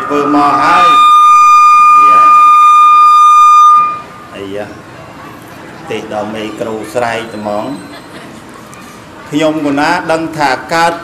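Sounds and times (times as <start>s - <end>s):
microphone feedback howl: 0.0s - 4.3s.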